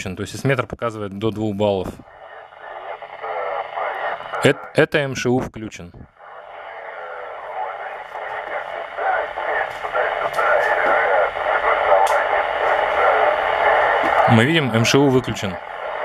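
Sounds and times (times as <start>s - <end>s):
hissy radio signal: 1.6s - 4.9s, 6.2s - 16.0s
faint clicks: 8.1s - 14.3s.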